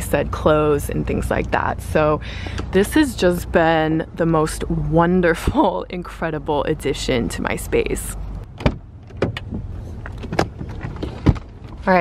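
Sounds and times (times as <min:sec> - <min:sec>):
car door opening: 0:08.4 - 0:12.0.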